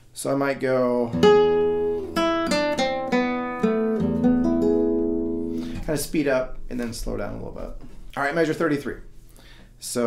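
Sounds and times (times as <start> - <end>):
classical guitar fingerstyle: 1.1 - 5.9.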